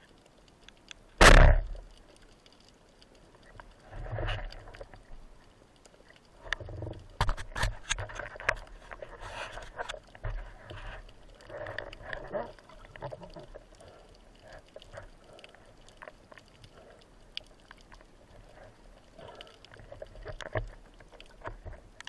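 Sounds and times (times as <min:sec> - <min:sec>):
small clicks and crackles: 0:00.0 - 0:22.0
sharp knock: 0:01.2 - 0:01.7.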